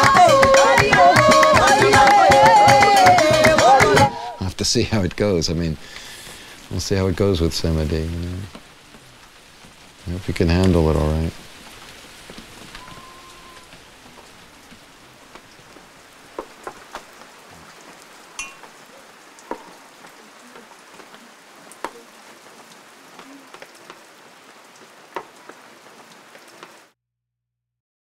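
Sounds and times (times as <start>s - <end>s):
water drips: 0.0s - 26.9s
steady rain falling: 0.0s - 27.0s.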